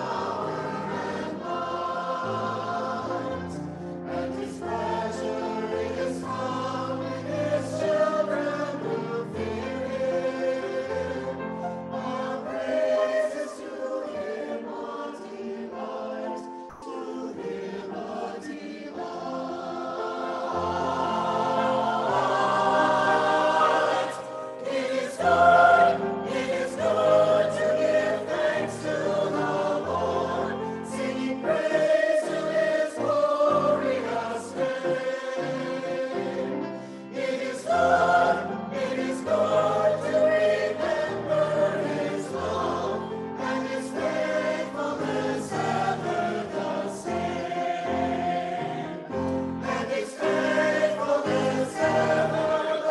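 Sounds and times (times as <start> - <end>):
mixed choir singing in parts: 0.0 - 52.9.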